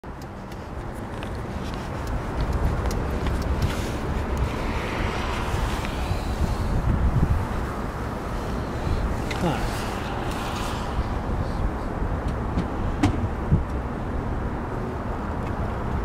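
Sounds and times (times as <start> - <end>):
wind buffeting microphone: 0.1 - 16.0.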